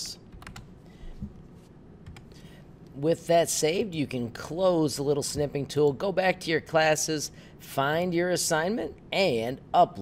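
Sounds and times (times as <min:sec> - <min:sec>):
keyboard keystrokes: 0:00.3 - 0:00.7.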